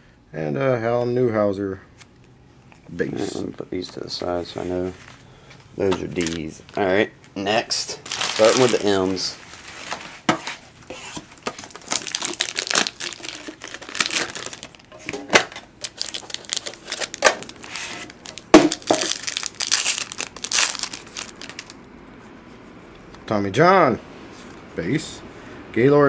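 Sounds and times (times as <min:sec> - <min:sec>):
plastic wrapping crinkling and tearing: 0:06.1 - 0:06.9, 0:07.8 - 0:10.1, 0:11.3 - 0:21.8.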